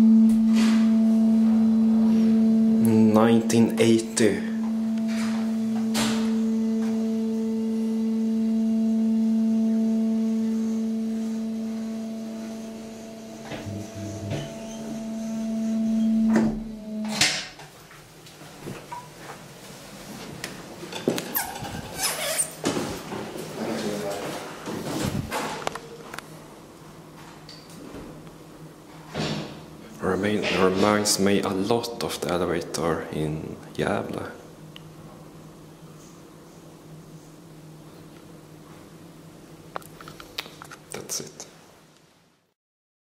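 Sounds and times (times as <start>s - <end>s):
lift stopping clunk: 0.0s - 2.8s, 4.6s - 17.6s
hydraulic pump motor humming: 0.0s - 17.5s.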